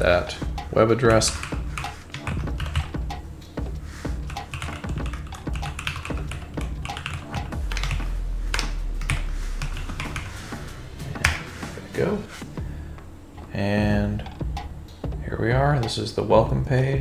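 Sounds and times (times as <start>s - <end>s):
low steady hum: 0.0s - 17.0s
computer keyboard typing: 1.1s - 3.2s, 4.2s - 8.1s.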